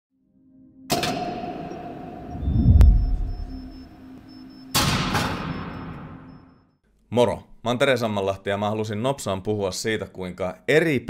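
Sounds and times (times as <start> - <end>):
sharp ringing hit: 0.9 - 4.1
deep boom: 2.2 - 3.8.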